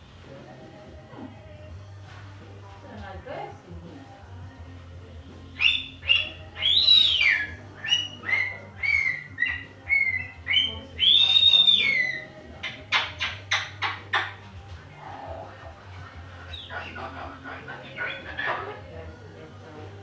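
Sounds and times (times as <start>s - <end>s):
cockatoo whistling calls: 5.6s - 14.3s.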